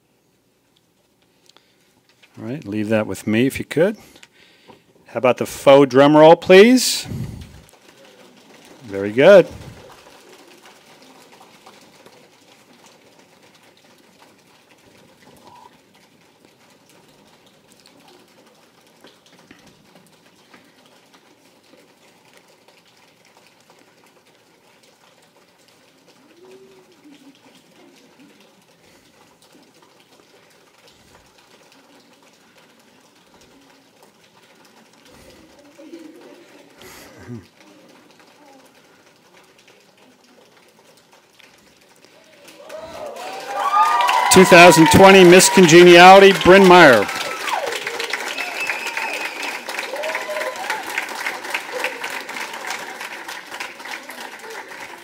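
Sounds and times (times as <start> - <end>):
soft voices: 26.2 - 29.2, 42.1 - 48.6.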